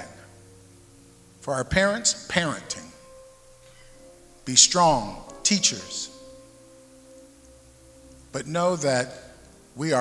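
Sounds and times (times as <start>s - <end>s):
soft held chord music: 0.0s - 10.0s.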